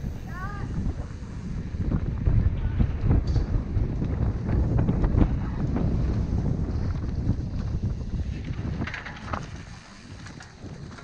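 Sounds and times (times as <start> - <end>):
wind buffeting microphone: 0.0 - 11.0
bike rattling clicks and knocks: 2.0 - 11.0.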